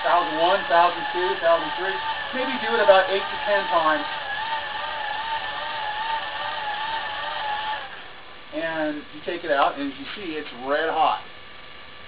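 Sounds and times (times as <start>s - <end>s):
hand-crank generator whine: 0.0s - 11.3s.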